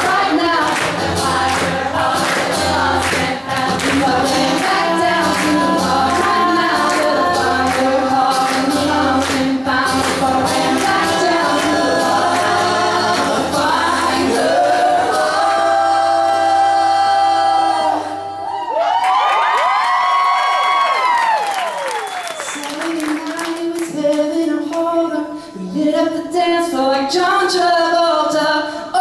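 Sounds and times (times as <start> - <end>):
strummed acoustic guitar: 0.0 - 15.2
voices singing in harmony: 0.0 - 18.8.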